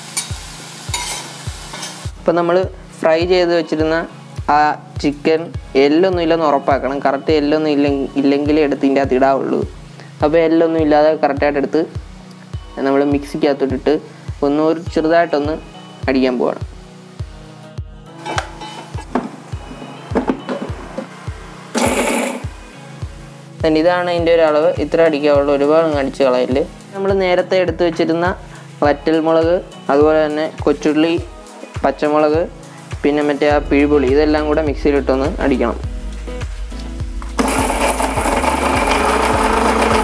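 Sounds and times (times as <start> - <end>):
background music with steady beat: 0.0 - 40.0
mixer grinder burst: 21.8 - 22.5, 37.4 - 40.0.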